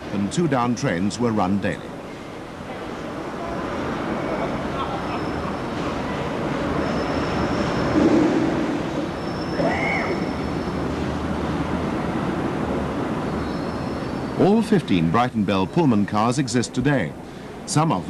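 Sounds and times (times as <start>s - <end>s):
faint voices: 0.0s - 7.4s.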